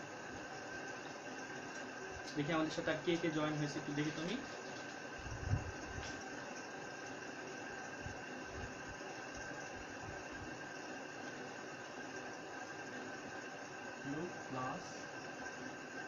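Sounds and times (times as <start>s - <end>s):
room noise hiss: 0.0s - 16.0s.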